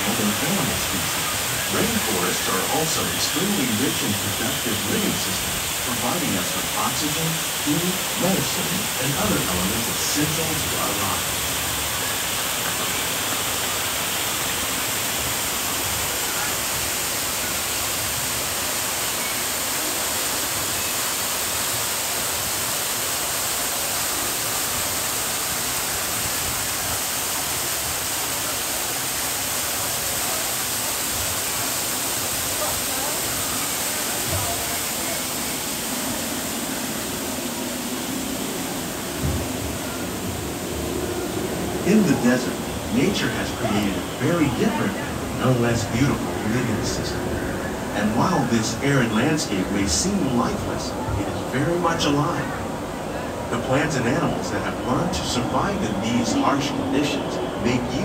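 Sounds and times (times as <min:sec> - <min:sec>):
waterfall rushing: 0:00.0 - 0:58.0.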